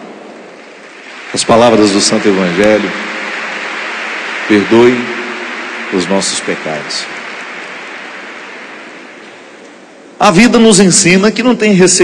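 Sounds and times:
congregation crowd noise: 0:00.0 - 0:11.1.

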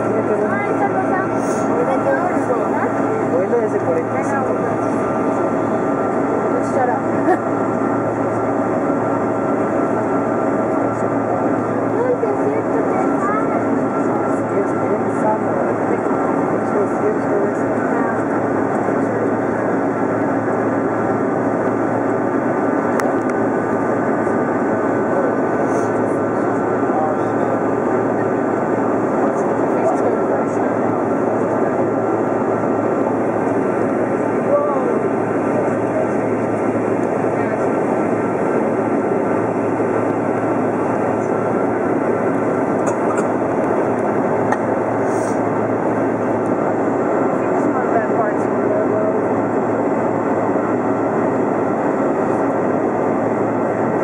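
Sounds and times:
airliner cabin engine noise: 0:00.0 - 0:54.0.

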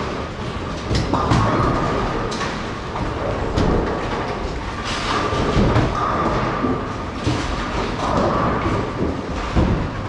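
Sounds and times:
bowling balls rumbling on lanes: 0:00.0 - 0:10.0
bowling pins clacking: 0:00.0 - 0:10.0
constant low roar: 0:00.0 - 0:10.0.

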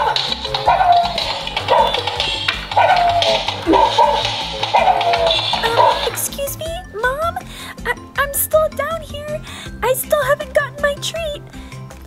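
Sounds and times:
toy dog yapping barks: 0:00.0 - 0:06.3
toy dance song beat: 0:00.0 - 0:07.4.

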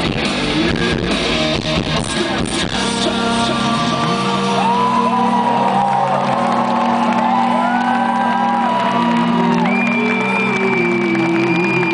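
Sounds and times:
live rock band chord: 0:00.0 - 0:05.1
fans shouting and whooping: 0:02.0 - 0:11.9.

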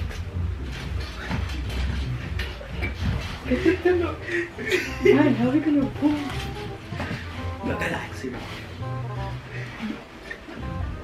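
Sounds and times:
comforter rustling: 0:00.0 - 0:10.6
steady low hum: 0:00.0 - 0:11.0
mattress shifting: 0:04.7 - 0:10.6.

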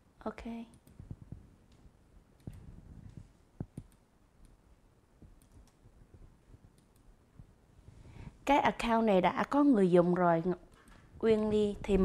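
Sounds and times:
computer keyboard and mouse clicks: 0:00.7 - 0:01.8, 0:02.4 - 0:04.6, 0:05.3 - 0:05.9.

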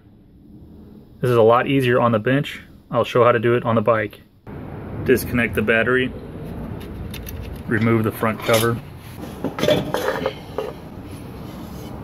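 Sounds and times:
metal cover clinking and scraping: 0:06.6 - 0:11.0.

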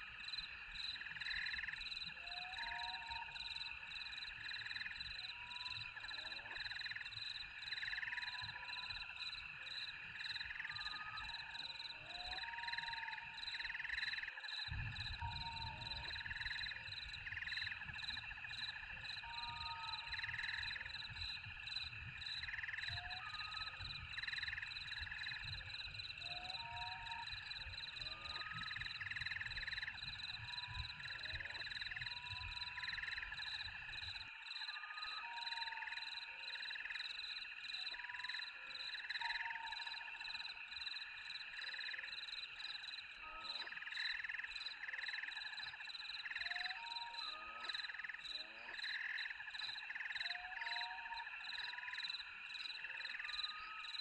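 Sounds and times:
frogs calling: 0:00.4 - 0:54.0.

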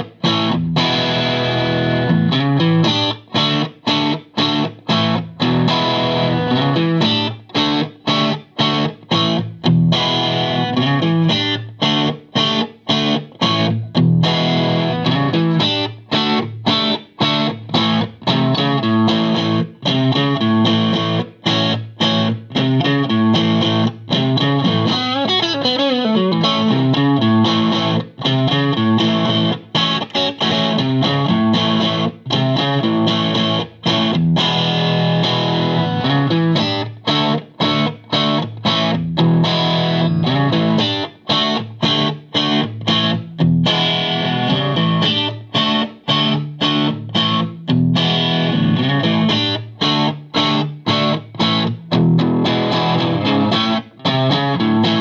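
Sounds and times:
electric guitar riffs and chords: 0:00.0 - 0:55.0.

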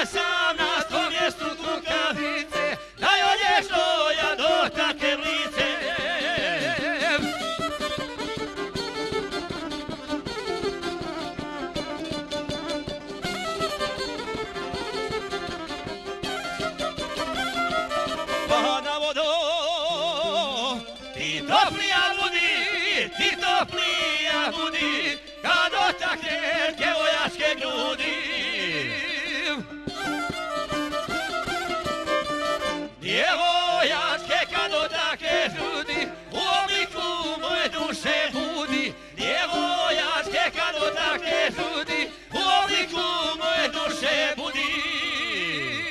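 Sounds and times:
man singing with vibrato: 0:00.0 - 0:07.9, 0:18.2 - 0:30.1, 0:32.6 - 0:45.9
violin playing melody: 0:00.0 - 0:19.2, 0:19.9 - 0:45.9
strummed lute: 0:00.0 - 0:45.9.

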